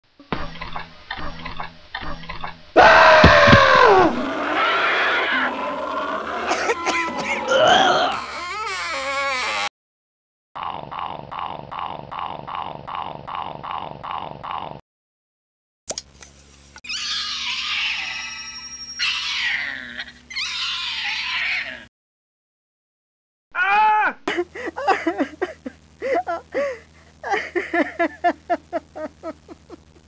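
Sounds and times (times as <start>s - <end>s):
wavering groaning sounds: 2.8s - 9.6s
loud cry bending down in pitch: 2.8s - 9.7s.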